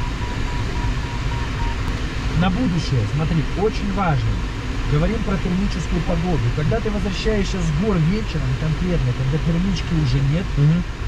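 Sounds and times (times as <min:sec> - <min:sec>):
variometer beeping: 0:00.0 - 0:02.9
airflow rushing in cockpit: 0:00.0 - 0:11.0.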